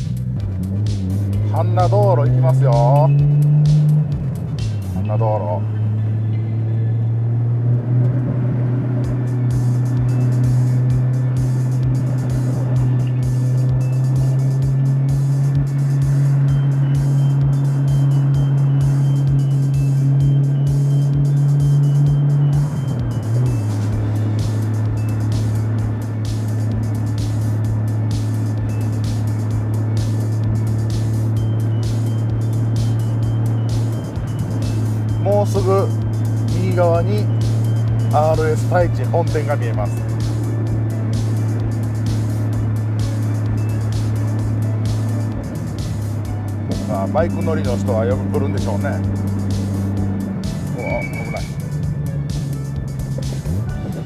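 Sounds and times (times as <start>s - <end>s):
car engine droning: 0.0s - 54.0s.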